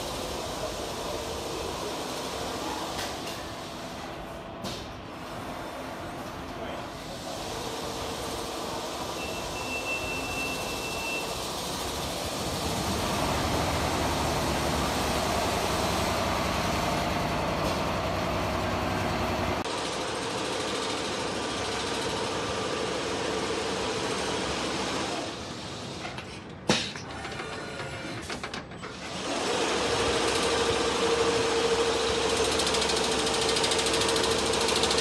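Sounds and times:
quilting machine running: 0:28.9 - 0:35.0.

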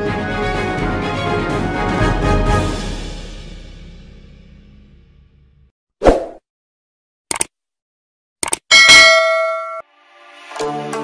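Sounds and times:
quick clicks: 0:07.3 - 0:07.5, 0:08.4 - 0:08.7
notification bell ding: 0:08.7 - 0:09.8.

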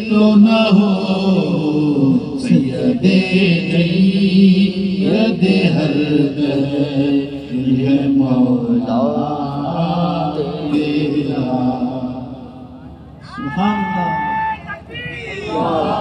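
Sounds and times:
devotional chanting: 0:00.0 - 0:16.0.

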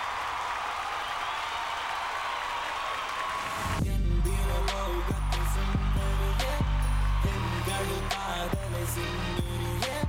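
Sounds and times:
audience applauding: 0:00.0 - 0:10.0
heavy bass music: 0:03.8 - 0:10.0.

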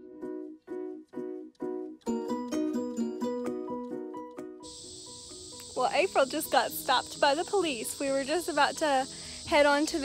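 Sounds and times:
plucked background music: 0:00.0 - 0:10.0
insects buzzing: 0:04.6 - 0:10.0.

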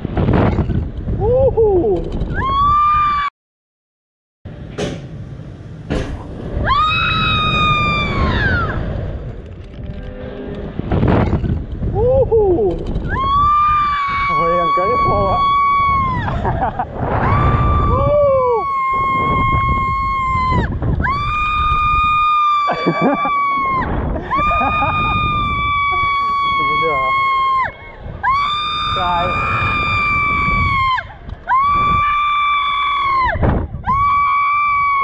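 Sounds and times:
wind rumble on microphone: 0:00.0 - 0:03.3, 0:04.5 - 0:35.0.

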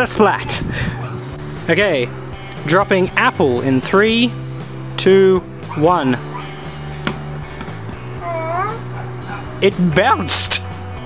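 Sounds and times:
background guitar music: 0:00.0 - 0:11.0.

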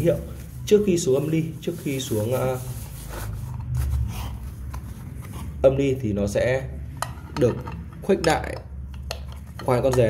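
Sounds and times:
tissue paper rustling: 0:00.0 - 0:05.0.

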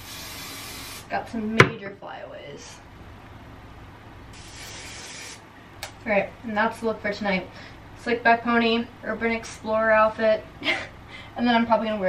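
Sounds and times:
hairspray hissing: 0:00.0 - 0:01.1, 0:04.4 - 0:05.4.

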